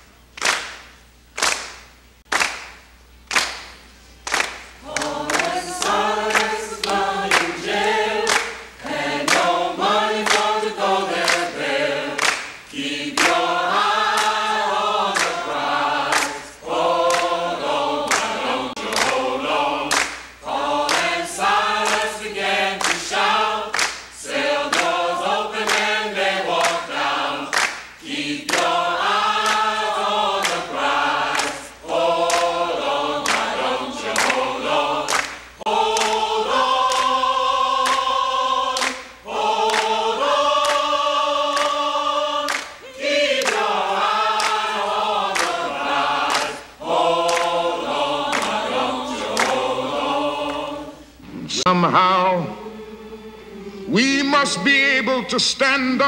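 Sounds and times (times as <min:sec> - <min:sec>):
choir singing slow song: 0:04.4 - 0:54.5.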